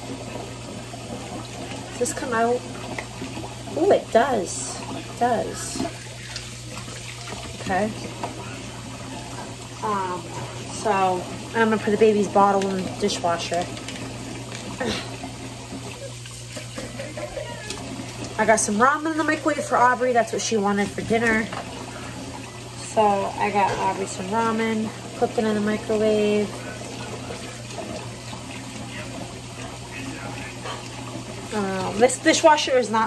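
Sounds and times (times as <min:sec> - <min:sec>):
kitchen tap running: 0:00.0 - 0:33.0.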